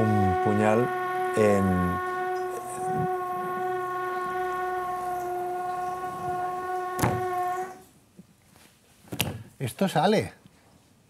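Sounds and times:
steady pitched tone: 0.0s - 7.9s.

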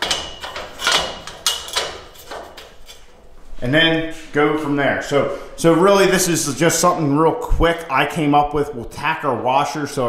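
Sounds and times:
metal tubing clanking: 0.0s - 3.2s.

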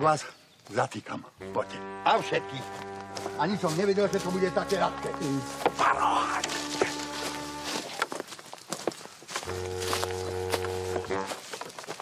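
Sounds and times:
music with long held notes: 1.4s - 7.9s, 9.5s - 11.3s
footsteps crunching dry leaves: 2.2s - 12.0s.

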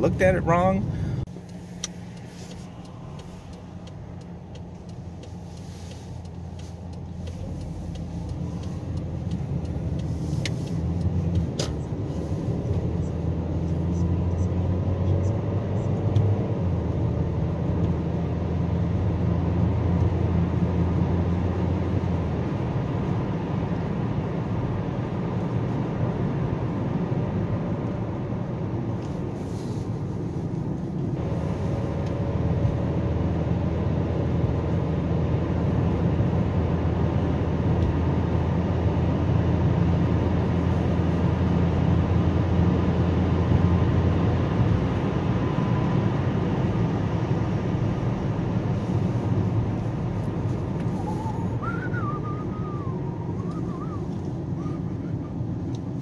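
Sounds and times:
car engine and tyre rumble: 0.0s - 56.0s.

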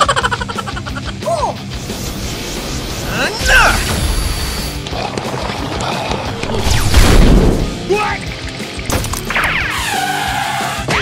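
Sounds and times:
cartoon background music: 0.0s - 11.0s
crash sound effects: 6.4s - 7.8s.

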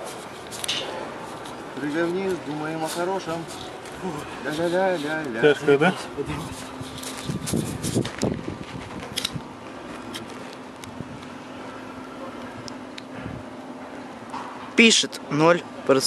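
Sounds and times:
rustling: 0.0s - 9.3s
faint steady hum: 0.0s - 16.0s
outdoor air noise: 0.0s - 16.0s.

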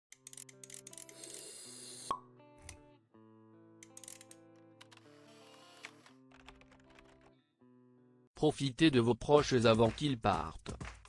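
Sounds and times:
background music with held notes: 0.1s - 8.3s.

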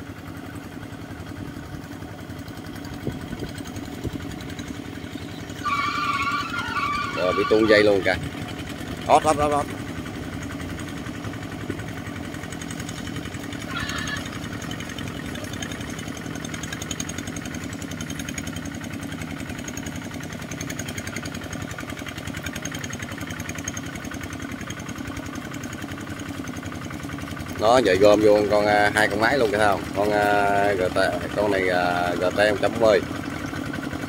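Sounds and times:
diesel engines chugging: 0.0s - 34.0s.

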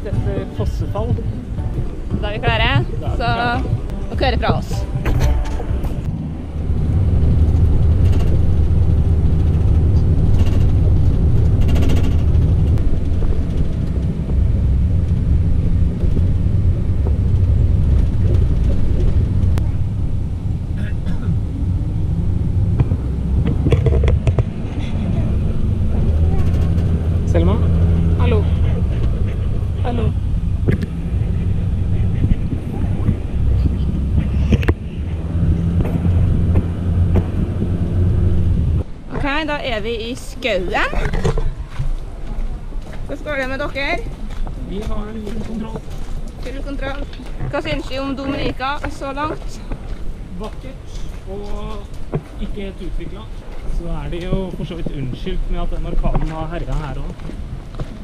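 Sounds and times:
van engine and road rumble: 0.0s - 58.0s
faint voices: 24.5s - 36.1s.

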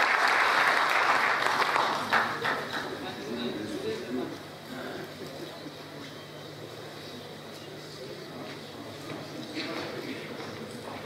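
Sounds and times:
low electrical hum: 0.0s - 11.0s
murmur of voices in a hall: 0.0s - 11.0s.

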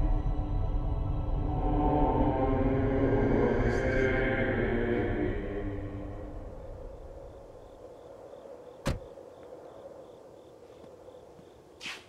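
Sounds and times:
crickets chirping: 5.4s - 12.0s
car door shutting: 8.8s - 9.1s.

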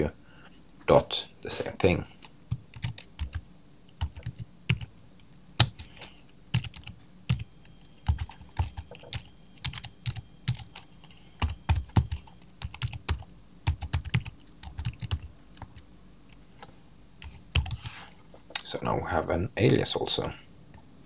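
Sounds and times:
typing on computer keyboard: 1.8s - 3.4s, 4.0s - 4.9s, 5.6s - 7.4s, 8.0s - 15.8s, 17.2s - 17.9s.

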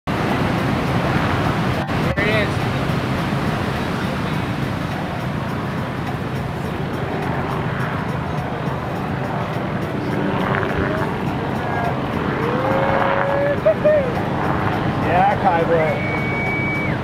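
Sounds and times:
wind: 0.0s - 17.0s
breaking surf: 0.1s - 17.0s.

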